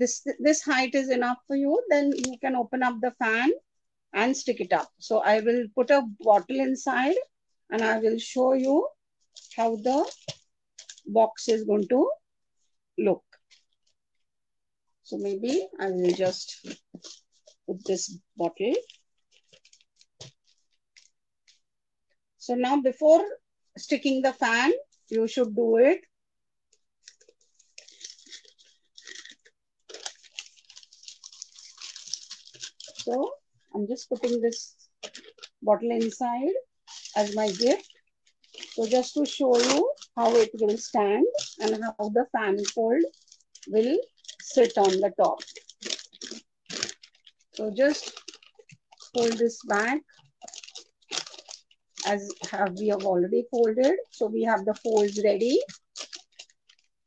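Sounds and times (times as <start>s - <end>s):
paper box crinkling and rustling: 9.2s - 11.1s, 13.3s - 14.0s, 15.4s - 21.6s, 26.8s - 36.2s, 36.8s - 57.0s.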